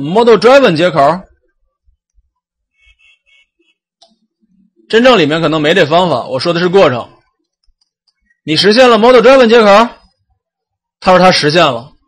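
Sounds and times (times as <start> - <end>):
man talking: 0.0 - 1.4, 4.8 - 7.3, 8.4 - 10.1, 11.0 - 12.0.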